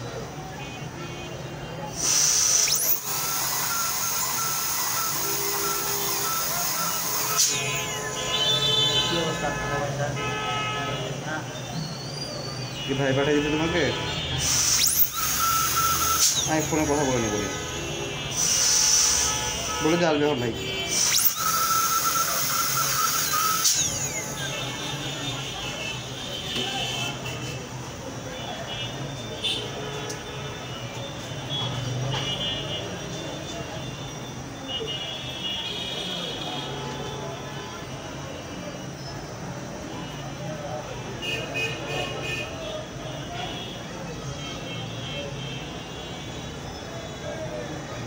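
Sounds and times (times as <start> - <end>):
dental drill whining: 1.9 - 9.6, 14.4 - 25.4.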